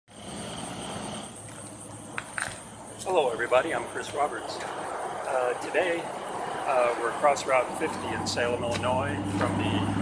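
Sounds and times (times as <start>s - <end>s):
highway traffic rush: 0.1s - 10.0s
thin high whine: 0.1s - 10.0s.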